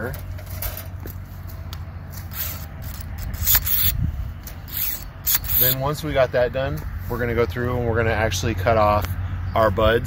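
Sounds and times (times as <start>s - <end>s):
steady low rumble: 0.2s - 10.0s.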